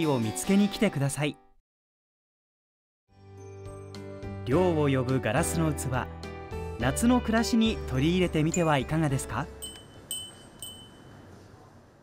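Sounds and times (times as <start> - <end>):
wind chime ringing: 8.3 - 11.3.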